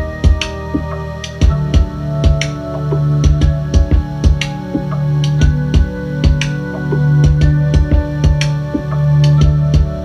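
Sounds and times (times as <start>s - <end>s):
kick drum pattern: 0.0s - 10.0s
sustained keyboard chords: 0.0s - 10.0s
snapping snare or clap hits: 6.3s - 6.6s.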